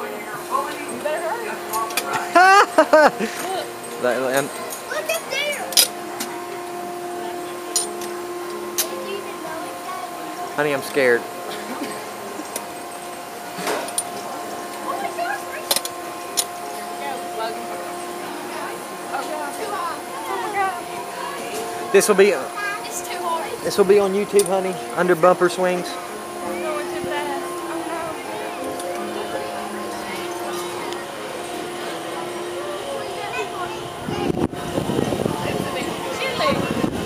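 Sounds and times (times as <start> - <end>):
people's voices: 0.0 - 37.0
steady mechanical hum: 0.0 - 37.0.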